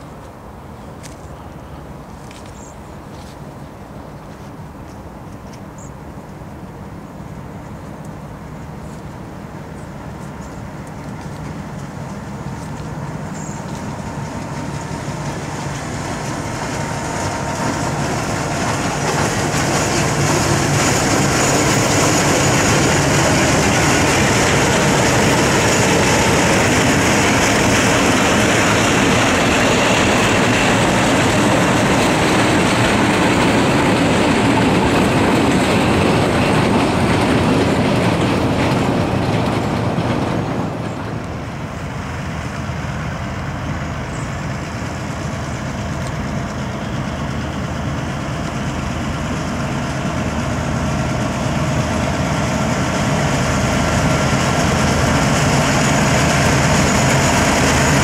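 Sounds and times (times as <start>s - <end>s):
diesel locomotives running past: 0.0s - 58.0s
wheels rolling on rails: 7.8s - 58.0s.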